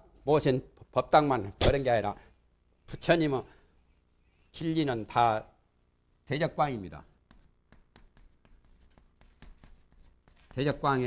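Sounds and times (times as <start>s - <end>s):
chalk tapping and scratching: 7.0s - 11.0s.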